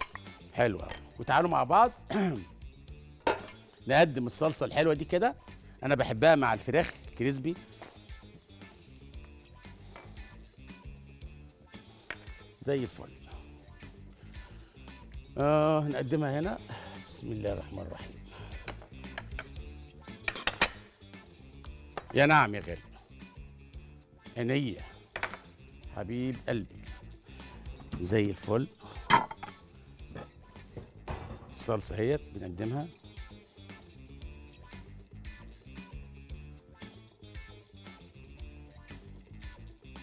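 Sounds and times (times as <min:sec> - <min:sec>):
utensils clinking on dishes: 0:00.0 - 0:01.2, 0:03.3 - 0:03.7, 0:20.2 - 0:20.9, 0:29.0 - 0:30.3
soft background music: 0:00.0 - 0:40.0
utensils clinking against pan: 0:03.2 - 0:03.7, 0:20.2 - 0:20.9, 0:29.0 - 0:29.6
man speaking: 0:12.6 - 0:13.3, 0:15.4 - 0:18.2, 0:22.1 - 0:22.9, 0:27.9 - 0:28.8, 0:31.5 - 0:32.9.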